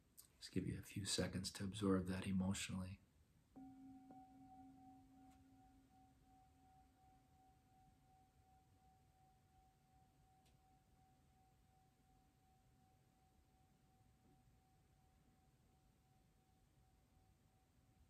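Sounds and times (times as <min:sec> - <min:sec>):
singing bowl ringing: 0:03.5 - 0:18.0.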